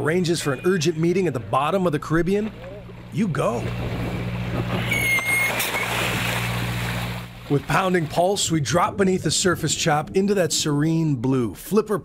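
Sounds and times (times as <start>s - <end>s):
sea noise: 0.0s - 11.1s
boat engine hum: 0.0s - 12.0s
wind: 2.0s - 8.4s
high whistling tone: 4.8s - 6.0s.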